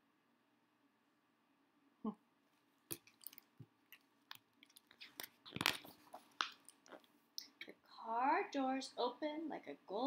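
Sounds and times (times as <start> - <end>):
book pages turning: 2.9 - 7.1.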